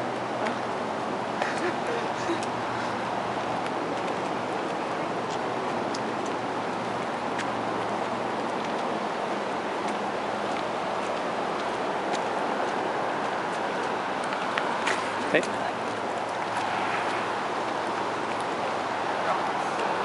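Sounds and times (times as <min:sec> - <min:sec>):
flowing water rushing: 0:00.0 - 0:20.0.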